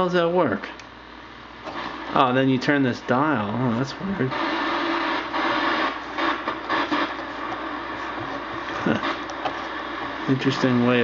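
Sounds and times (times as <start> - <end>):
faint steady hum: 0.0 - 11.0
tv static hiss: 0.0 - 11.0.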